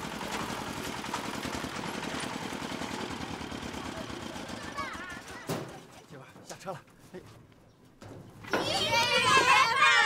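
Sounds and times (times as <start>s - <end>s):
children shouting a chant: 8.6s - 10.0s.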